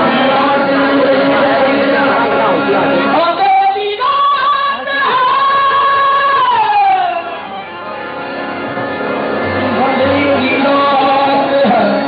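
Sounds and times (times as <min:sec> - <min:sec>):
accompanying music: 0:00.0 - 0:12.0.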